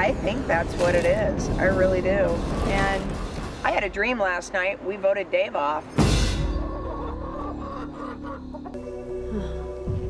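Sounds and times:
background music: 0.0 - 10.0
chicken clucking: 6.4 - 8.8.

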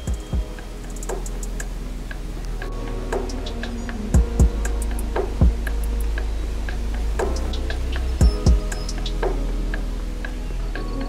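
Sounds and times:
deep bass: 0.0 - 11.0
ticking hi-hats: 0.0 - 11.0
kick drum dropping in pitch: 4.2 - 4.6, 8.2 - 8.7.

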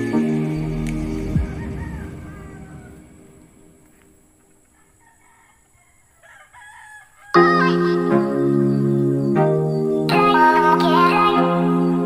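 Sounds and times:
background music: 0.0 - 4.4, 7.4 - 12.0
faint rooster crowing: 1.2 - 3.7, 4.6 - 7.5.

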